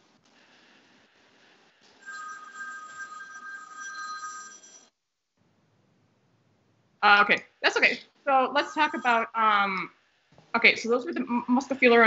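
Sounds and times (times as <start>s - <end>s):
electronic telephone ringing: 2.0s - 4.9s, 8.4s - 9.4s.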